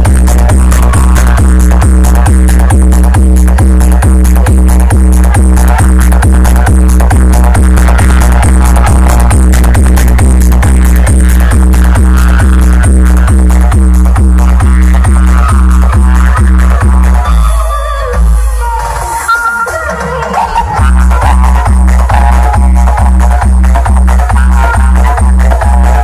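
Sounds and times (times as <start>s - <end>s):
heavy bass beat: 0.0s - 26.0s
loud electronic dance music: 0.0s - 26.0s.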